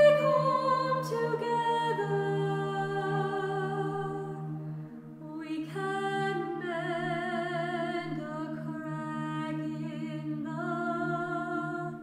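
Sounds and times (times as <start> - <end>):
a cappella group singing: 0.0 - 4.6, 5.2 - 12.0.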